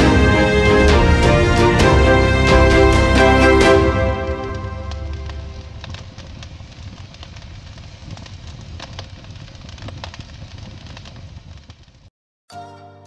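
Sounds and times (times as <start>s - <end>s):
fire crackling with hiss: 0.0s - 12.1s.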